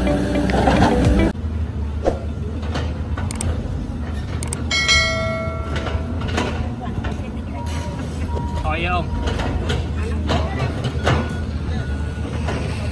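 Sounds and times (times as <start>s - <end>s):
diesel engines rumbling: 0.0s - 12.9s
bell-like metallic ring: 4.7s - 6.1s.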